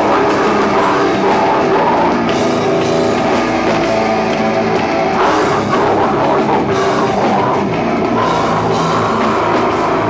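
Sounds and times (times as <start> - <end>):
drum kit and cymbals: 0.0 - 10.0
heavy rock band playing: 0.0 - 10.0.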